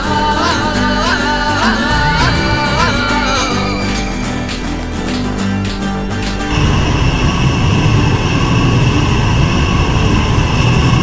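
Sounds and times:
faint high hum: 0.4 - 11.0
loud low rumbling noise: 0.7 - 11.0.

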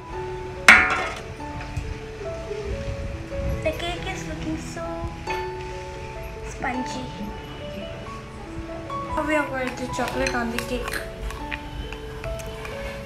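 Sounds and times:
background music: 0.0 - 13.0
metal tin clinking against plate: 0.7 - 1.3.

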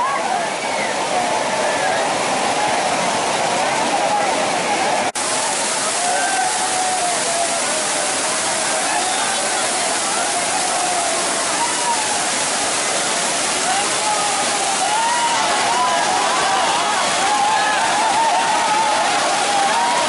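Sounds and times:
people calling and chattering: 0.0 - 20.0
waterfall rushing over rocks: 0.0 - 20.0.

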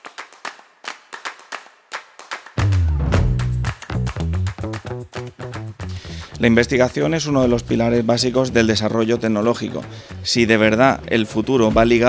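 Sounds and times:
sharp clap-like percussive hits: 0.0 - 6.3.

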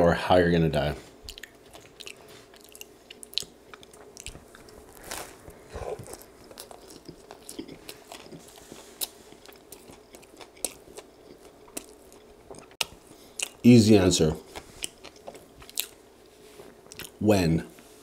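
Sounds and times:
person chewing a sandwich: 1.1 - 13.6, 14.4 - 17.2.

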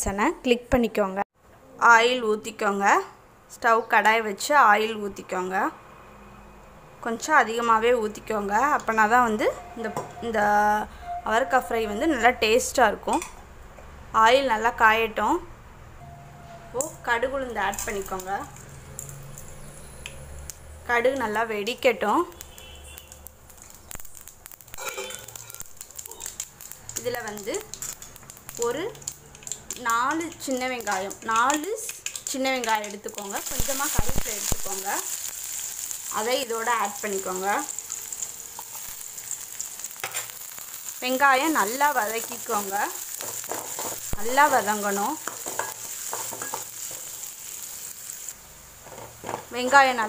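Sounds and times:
faint oil sizzle: 16.7 - 50.0
mustard seeds popping in oil: 17.4 - 48.2
metal spoon scraping pan: 24.7 - 25.6, 45.2 - 47.1.

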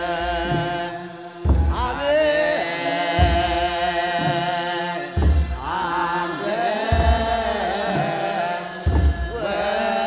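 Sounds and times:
voices chanting: 0.0 - 10.0.

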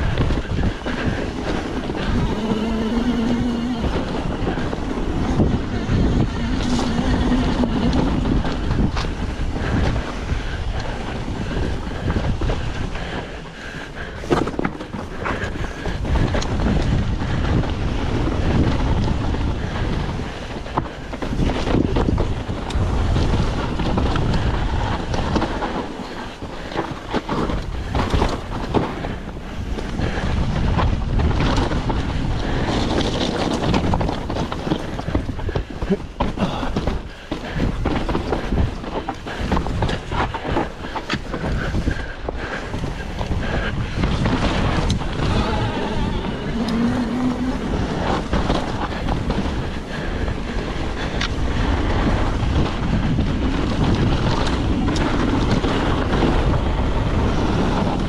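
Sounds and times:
bike knocking and rattling: 0.0 - 58.0
wind on microphone: 0.0 - 58.0
tyres crunching over gravel: 20.6 - 58.0.

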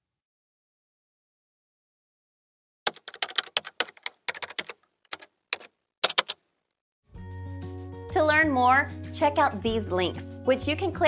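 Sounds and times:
keyboard key clicks: 2.9 - 6.4.

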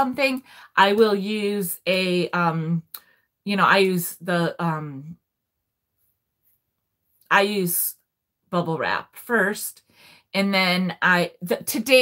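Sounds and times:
woman's voice: 0.0 - 5.2, 7.3 - 9.8, 10.4 - 12.0.

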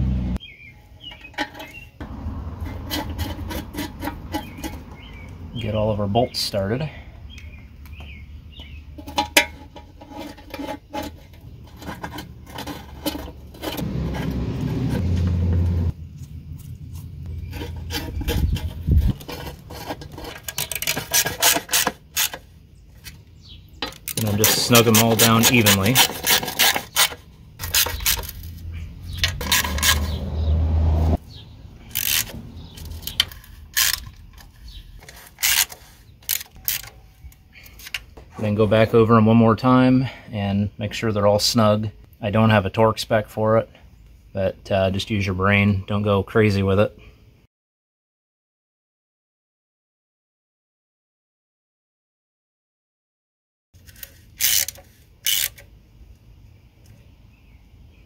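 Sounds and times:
low hum: 11.6 - 20.3
ratchet clicking on metal: 31.9 - 34.2, 35.1 - 36.9, 53.8 - 55.6.

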